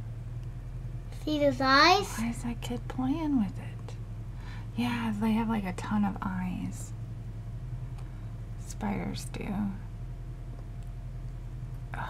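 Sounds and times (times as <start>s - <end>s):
steady low hum: 0.0s - 12.0s
woman speaking softly: 2.0s - 3.9s, 4.8s - 6.9s, 8.6s - 9.8s.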